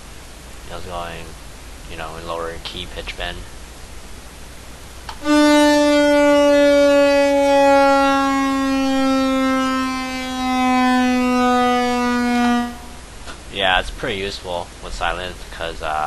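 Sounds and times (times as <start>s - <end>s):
synthesizer note sliding downward: 5.2s - 13.0s.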